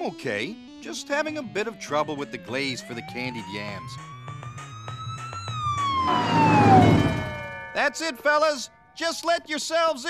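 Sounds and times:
cartoon fire-engine siren wailing: 0:01.8 - 0:07.7.

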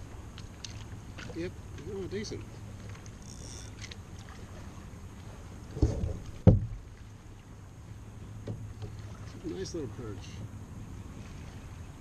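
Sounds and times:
low steady rumble: 0:00.0 - 0:12.0
sharp knocks on plastic kayak: 0:05.8 - 0:06.8.

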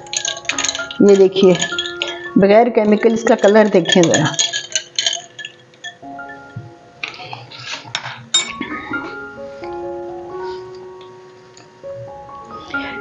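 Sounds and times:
spoon clinking against ice and glass: 0:00.0 - 0:06.4
background music: 0:00.0 - 0:13.0.

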